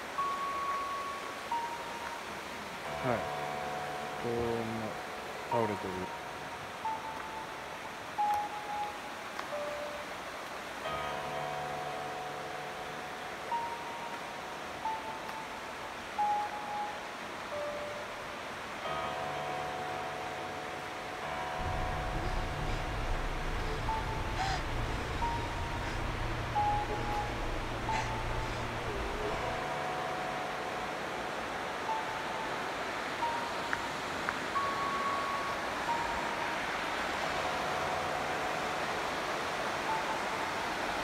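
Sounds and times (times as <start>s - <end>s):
slow melody of held notes: 0.0s - 41.0s
sustained chords: 2.8s - 7.0s, 18.8s - 40.3s
low bass line: 21.6s - 30.0s.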